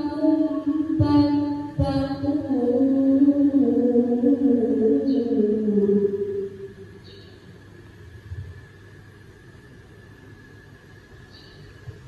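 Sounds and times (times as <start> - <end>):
woman reciting melodically: 0.0 - 6.8.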